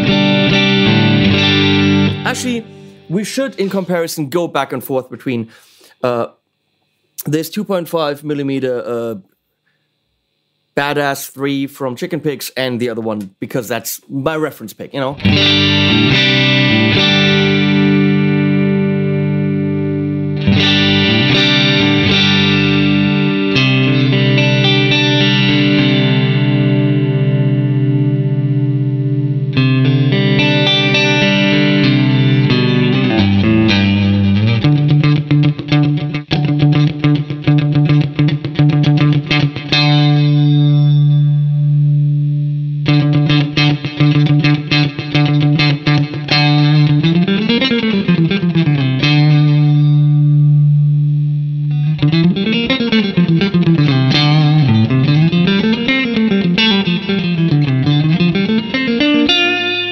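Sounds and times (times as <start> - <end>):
electric guitar through amp: 0.0 - 7.6, 15.0 - 59.9.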